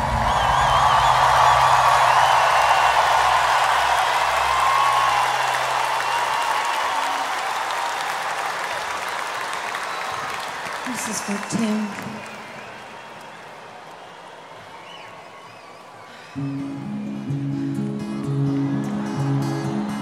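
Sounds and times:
whistles from crowd: 0.0s - 7.4s, 8.7s - 10.9s, 12.0s - 17.4s
crowd cheering and applauding: 0.0s - 20.0s.

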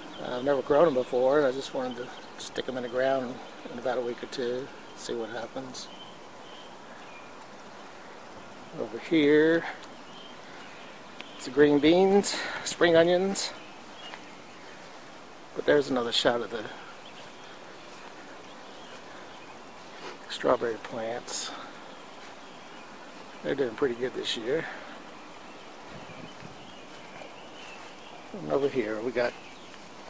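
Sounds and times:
faint outdoor background noise: 0.0s - 30.0s
steady hiss: 0.0s - 30.0s.

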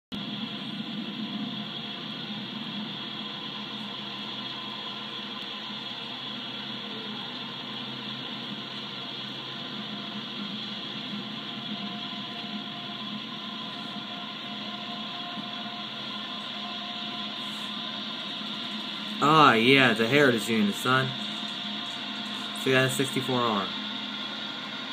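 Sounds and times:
background hum and hiss: 0.1s - 24.9s
faint steady tones: 0.1s - 24.9s.

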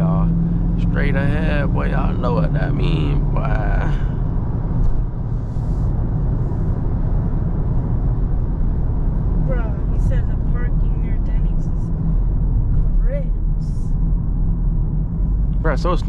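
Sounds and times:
car engine droning in cabin: 0.0s - 16.0s
road noise: 0.0s - 16.0s.

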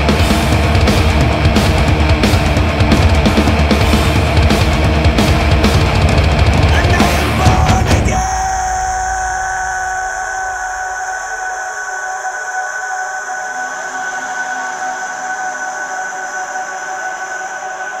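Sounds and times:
high ringing drone tones: 7.4s - 15.2s.

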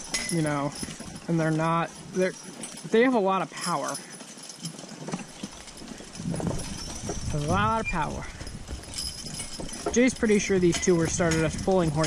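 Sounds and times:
horse hooves clopping on dirt: 0.0s - 12.0s.

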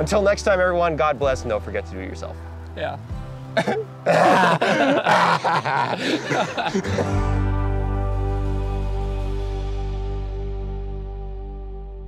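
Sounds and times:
background music: 0.0s - 12.0s
man laughing loudly: 3.6s - 7.2s.

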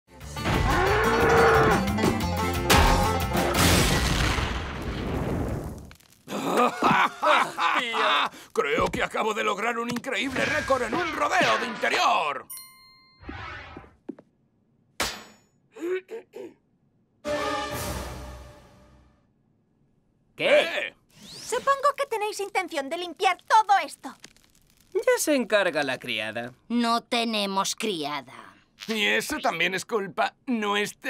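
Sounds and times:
cartoon bull mooing: 0.4s - 1.9s
sharp cartoon crack hit: 2.7s - 5.8s.

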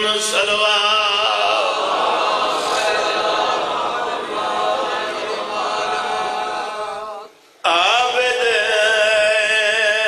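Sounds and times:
voices chanting unaccompanied: 1.1s - 7.3s.

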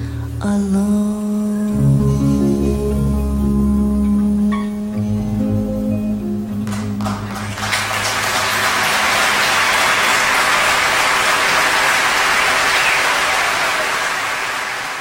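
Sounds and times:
audience applauding: 6.6s - 15.0s.

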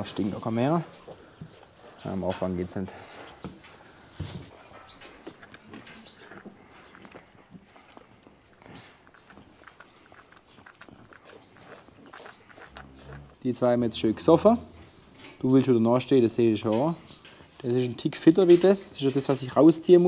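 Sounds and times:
calves sucking and smacking: 3.0s - 13.4s.

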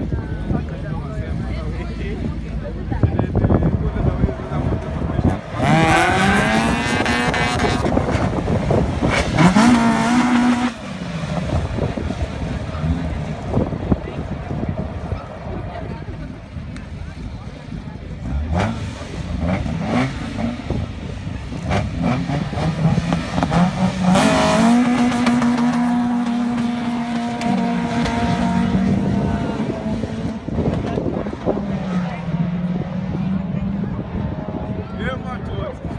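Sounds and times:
car engines revving: 0.0s - 35.9s
cars accelerating through gears: 3.6s - 14.6s, 18.2s - 35.0s.

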